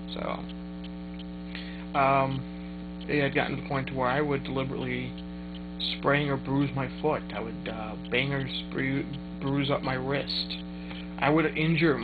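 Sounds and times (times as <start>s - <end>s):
man speaking: 0.0s - 0.4s, 1.6s - 2.5s, 3.1s - 5.2s, 5.8s - 10.6s, 11.2s - 12.0s
electrical mains hum: 0.0s - 12.0s.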